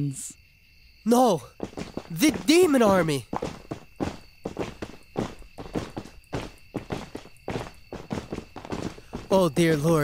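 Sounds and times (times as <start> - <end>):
many footsteps marching: 1.5 - 10.0.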